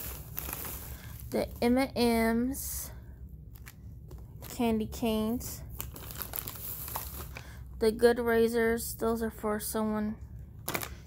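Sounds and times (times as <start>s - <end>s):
plastic bags crinkling: 0.0s - 1.9s, 3.5s - 7.7s, 10.6s - 11.0s.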